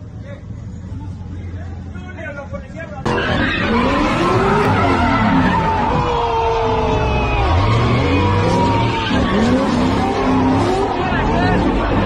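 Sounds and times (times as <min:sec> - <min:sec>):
car engine revving: 0:03.0 - 0:12.0.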